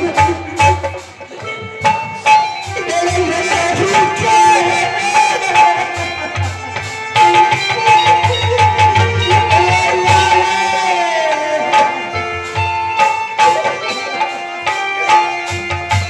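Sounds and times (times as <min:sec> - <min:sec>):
harmonium notes: 0:00.0 - 0:16.0
steady drum beat: 0:00.0 - 0:16.0.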